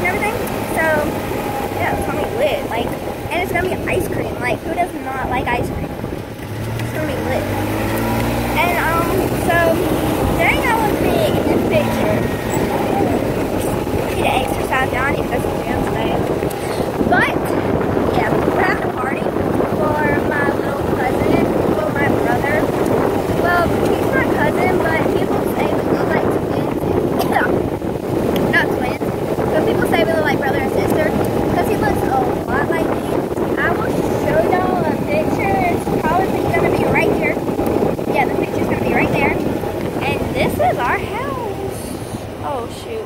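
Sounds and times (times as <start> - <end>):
golf cart motor hum: 0.0 - 43.0.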